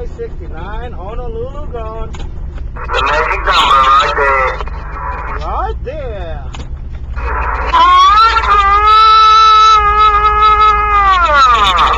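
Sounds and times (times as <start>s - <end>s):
radio chirps: 2.7s - 5.5s, 7.1s - 8.9s
wailing radio tone: 2.8s - 5.5s, 7.2s - 11.9s.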